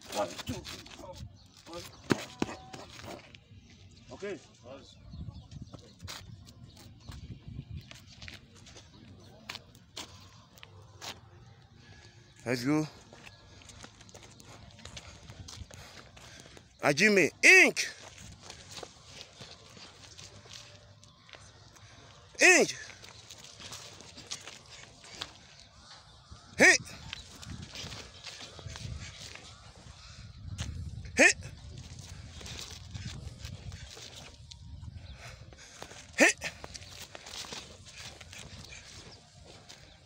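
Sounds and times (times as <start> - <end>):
footsteps on dirt: 12.9 - 16.8, 17.8 - 30.9, 31.6 - 40.0.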